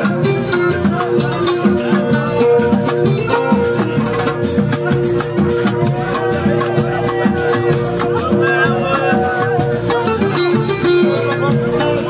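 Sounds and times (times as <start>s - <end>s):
live music with repeating beat: 0.0s - 12.0s.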